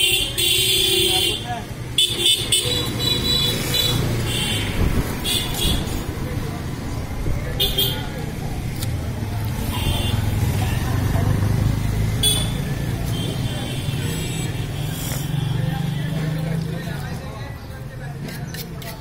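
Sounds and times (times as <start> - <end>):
voices: 0.0 - 19.0.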